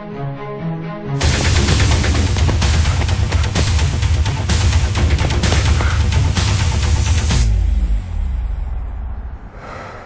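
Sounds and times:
soft breathy swell: 9.3 - 10.0.

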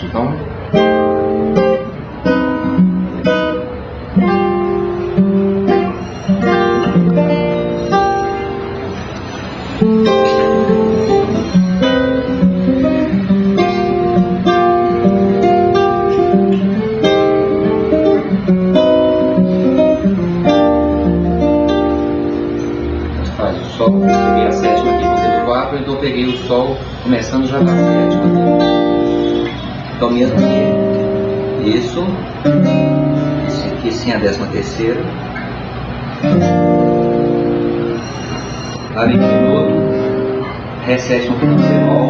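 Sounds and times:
guitar playing jazz chords: 0.0 - 42.0.

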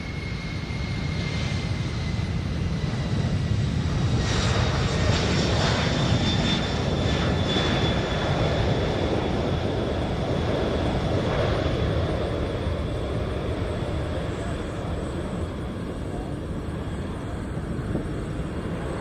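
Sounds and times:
jet engines roaring at takeoff: 0.0 - 19.0.

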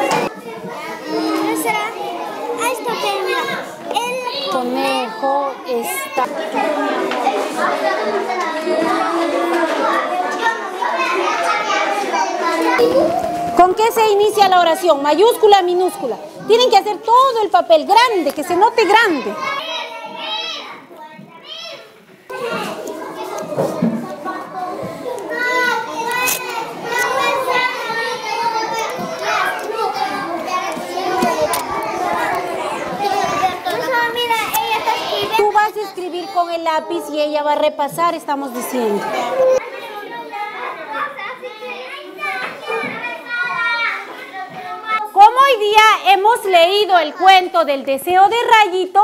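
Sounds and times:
children chattering: 0.0 - 49.0.

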